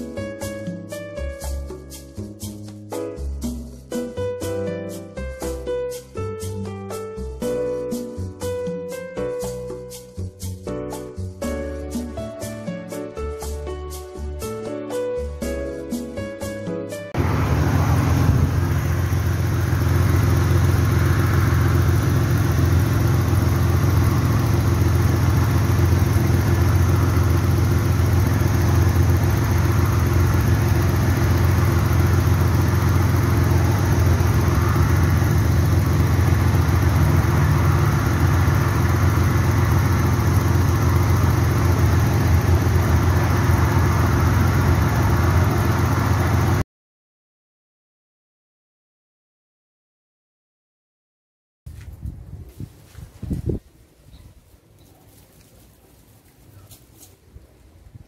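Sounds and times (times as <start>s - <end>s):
car engine idling: 17.2s - 46.6s.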